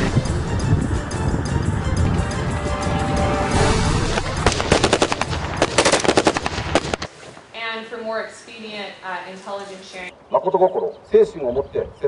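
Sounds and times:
machine gun automatic fire: 0:04.4 - 0:07.1.

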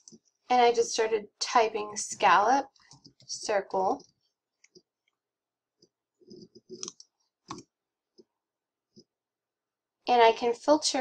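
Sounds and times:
computer keyboard and mouse clicks: 0:06.3 - 0:08.3.

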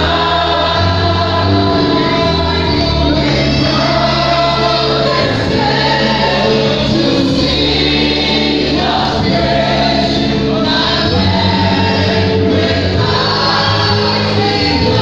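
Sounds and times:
congregation singing gospel song: 0:00.0 - 0:15.0
instrumental accompaniment: 0:00.0 - 0:15.0.

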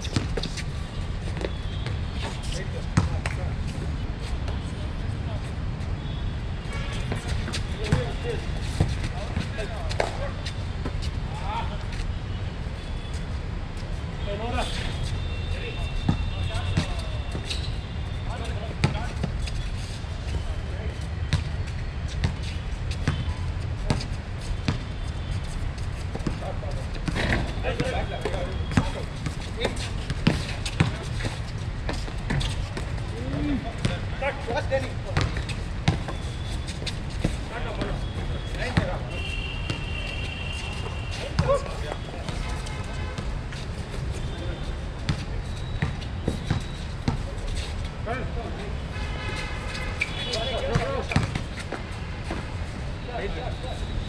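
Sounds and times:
players' indistinct voices: 0:07.0 - 0:13.2, 0:22.4 - 0:54.0
basketball bouncing on hard court: 0:35.2 - 0:36.2.

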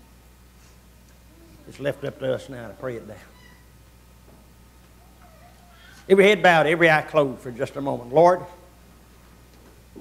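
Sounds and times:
low electrical hum: 0:00.0 - 0:10.0
man's voice: 0:01.6 - 0:03.3.

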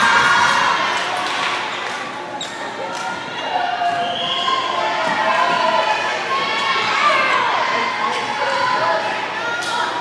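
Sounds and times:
spectators' voices and calls: 0:00.0 - 0:10.0.

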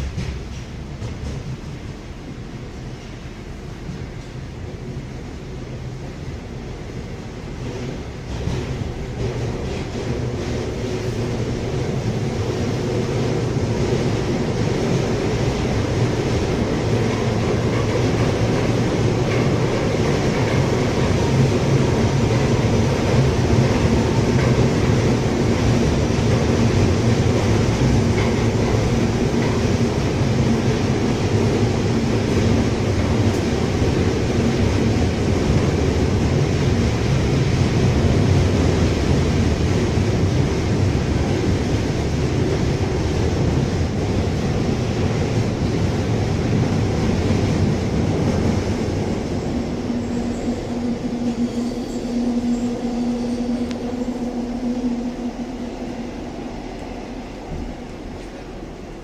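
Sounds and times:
metro train wheels rumbling: 0:00.0 - 0:59.0.

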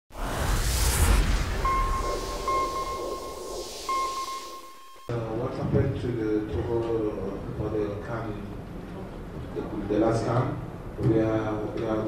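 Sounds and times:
high electronic beep tone: 0:00.6 - 0:05.1.

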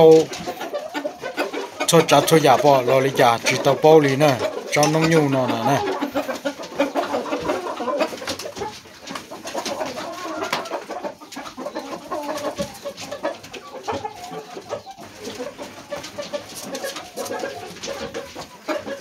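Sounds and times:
chickens clucking: 0:00.0 - 0:19.0.

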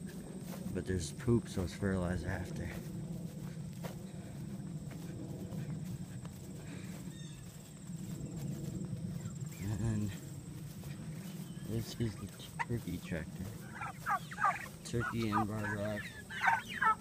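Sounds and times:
low rumble: 0:00.0 - 0:15.0
footsteps through grass: 0:00.0 - 0:17.0
turkey call: 0:12.1 - 0:12.9, 0:13.5 - 0:17.0.

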